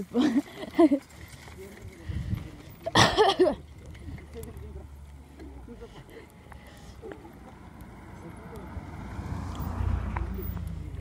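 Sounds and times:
bicycle tyres rolling on sand: 0.0 - 11.0
faint voices: 0.0 - 11.0
wind rumbling on microphone: 1.8 - 2.8.

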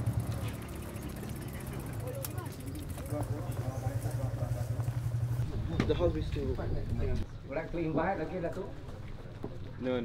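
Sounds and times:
murmur of people talking: 0.2 - 10.0.

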